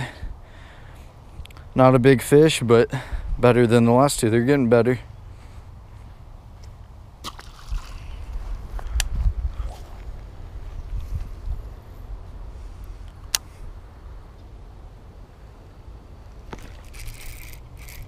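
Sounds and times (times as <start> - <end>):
low rumble on microphone: 7.7 - 15.0.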